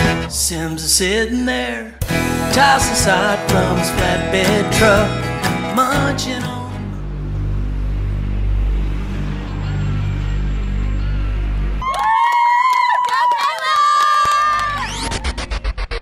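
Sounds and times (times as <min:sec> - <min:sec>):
low steady hum: 0:06.3 - 0:11.8
young women squealing and cheering: 0:11.8 - 0:15.4.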